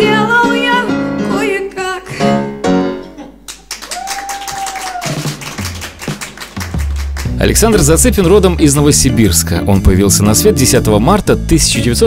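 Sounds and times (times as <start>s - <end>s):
applause: 3.5s - 7.5s.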